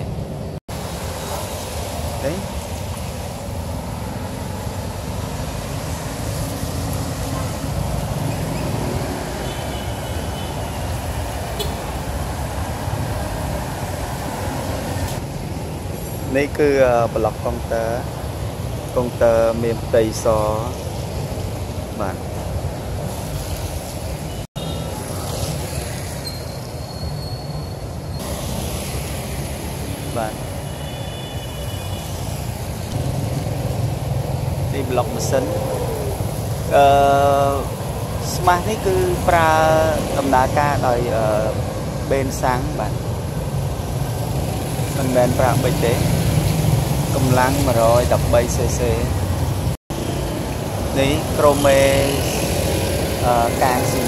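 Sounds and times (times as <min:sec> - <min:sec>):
street traffic rumble: 0:00.0 - 0:54.0.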